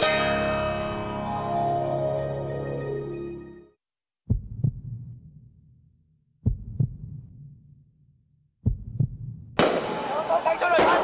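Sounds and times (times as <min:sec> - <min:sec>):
heartbeat thuds: 0:04.3 - 0:05.2, 0:06.4 - 0:07.4, 0:08.6 - 0:09.6.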